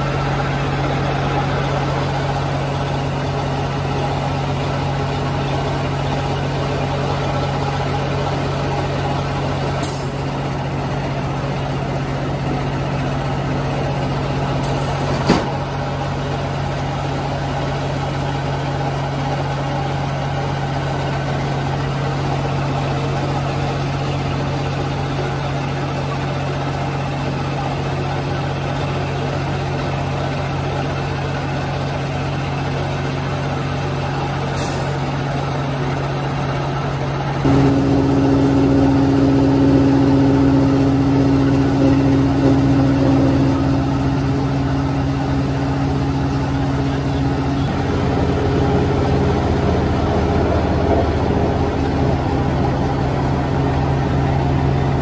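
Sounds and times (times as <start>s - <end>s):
higher machine hum: 35.6s - 55.0s
machine humming: 37.4s - 55.0s.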